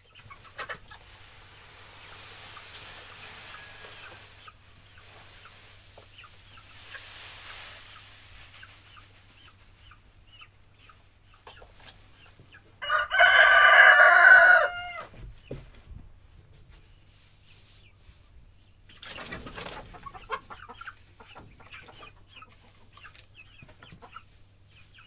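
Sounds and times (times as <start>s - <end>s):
chickens clucking: 0.0s - 25.0s
rustling of bedding and sack: 0.4s - 10.2s, 15.1s - 25.0s
rooster crowing: 12.8s - 15.1s.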